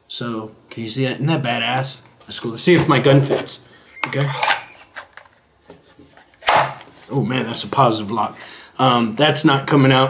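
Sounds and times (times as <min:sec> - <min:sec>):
pistol scraping in holster: 0:04.0 - 0:05.3.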